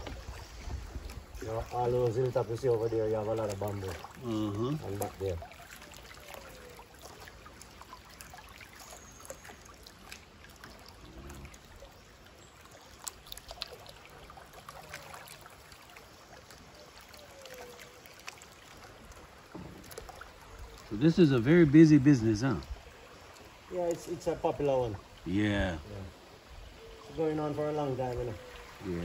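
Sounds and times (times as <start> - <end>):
river water lapping: 0.0 - 29.0.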